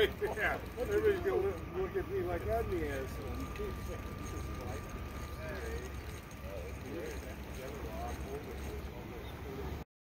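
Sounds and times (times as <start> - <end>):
distant voices talking: 0.0 - 9.8.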